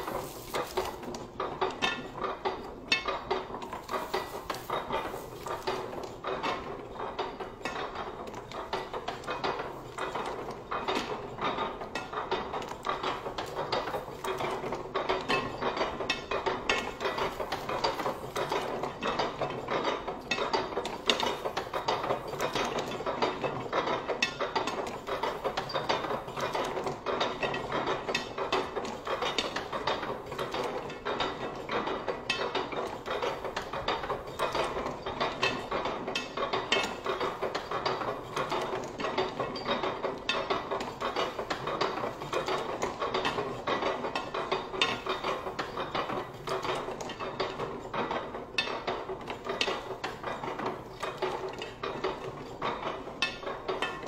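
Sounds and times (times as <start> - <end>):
printing press clattering: 0.0 - 54.0.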